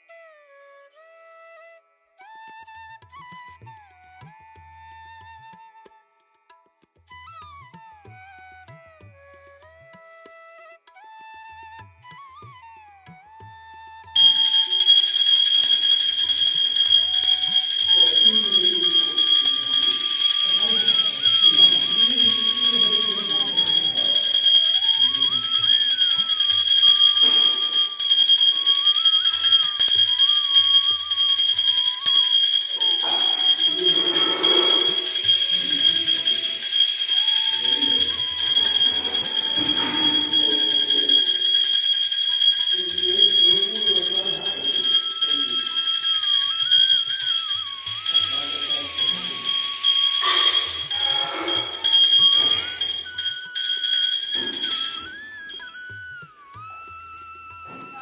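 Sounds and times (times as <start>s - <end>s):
voices chanting: 14.2s - 55.0s
temple bells ringing: 14.2s - 55.7s.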